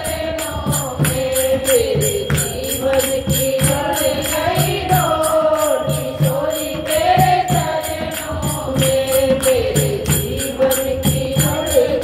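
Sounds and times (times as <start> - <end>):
hand drum beat: 0.0 - 12.0
women singing devotional song: 0.0 - 12.0
hand claps: 0.3 - 5.8.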